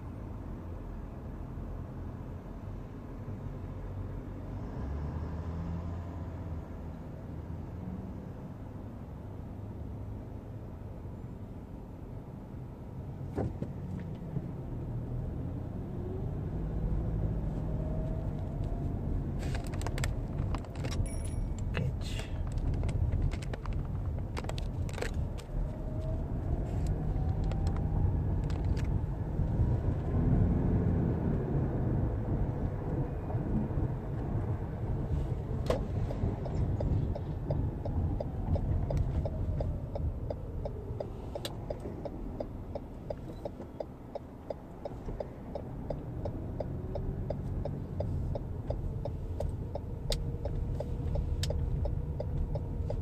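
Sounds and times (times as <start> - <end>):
car road and engine rumble: 0.0 - 53.0.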